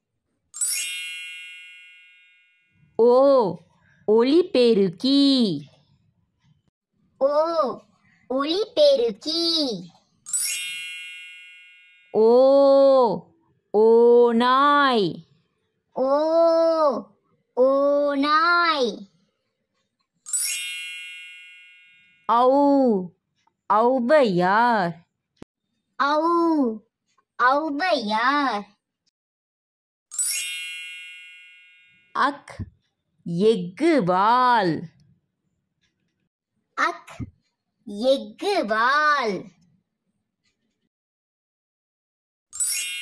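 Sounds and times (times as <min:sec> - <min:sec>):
bright chime: 0:00.6 - 0:02.8, 0:10.3 - 0:12.2, 0:20.3 - 0:22.3, 0:30.1 - 0:32.1, 0:42.6 - 0:43.0.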